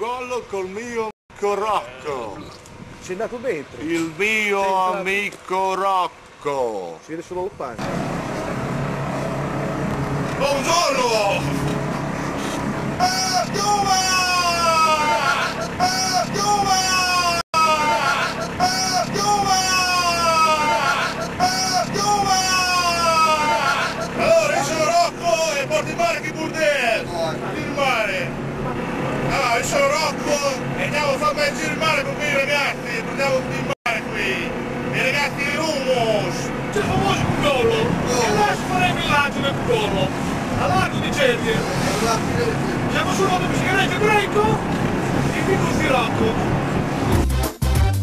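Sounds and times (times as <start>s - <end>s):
boat engine running: 7.8s - 47.2s
indistinct talking: 10.3s - 46.6s
man calling out: 12.9s - 28.4s, 29.2s - 39.8s.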